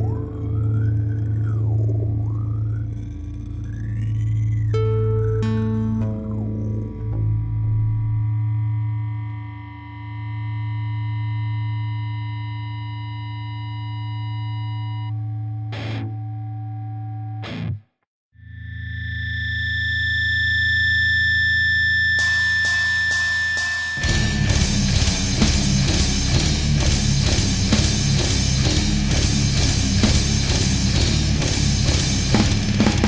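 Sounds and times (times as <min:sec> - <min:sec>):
distorted electric guitar: 0:00.0 - 0:17.9, 0:18.5 - 0:33.0.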